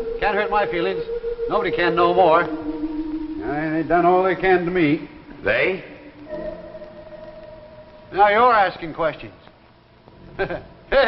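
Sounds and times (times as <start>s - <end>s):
sustained background music note: 0.0s - 9.4s.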